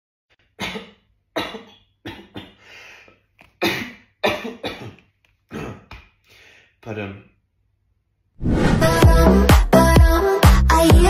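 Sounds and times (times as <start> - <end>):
man coughing: 0.6 - 2.7, 3.6 - 5.9.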